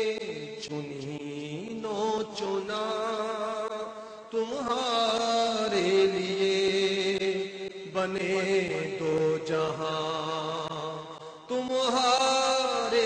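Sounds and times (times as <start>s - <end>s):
chant-like music: 0.0s - 13.0s.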